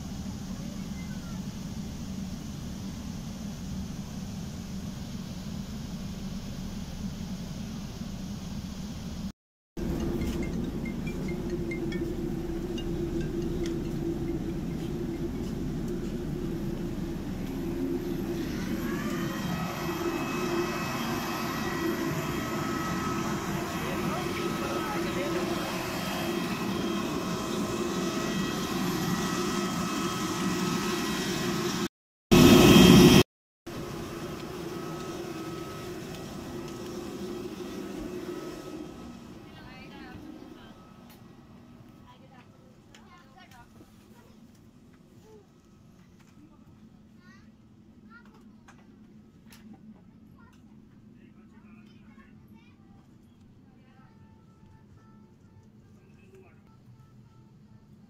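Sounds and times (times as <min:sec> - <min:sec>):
steady low rumble: 0:00.0 - 0:33.2
jet airliner whine: 0:00.0 - 0:43.6
loud burst of noise: 0:15.6 - 0:39.3.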